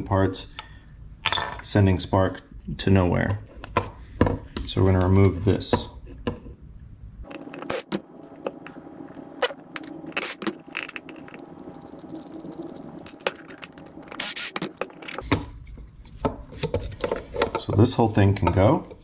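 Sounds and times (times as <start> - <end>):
small parts clicking and rattling: 7.3 - 15.4.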